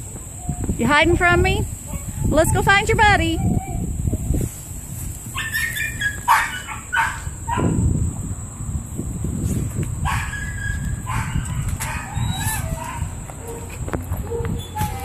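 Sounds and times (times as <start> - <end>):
dog barking and yipping: 5.3 - 7.8, 10.0 - 15.0.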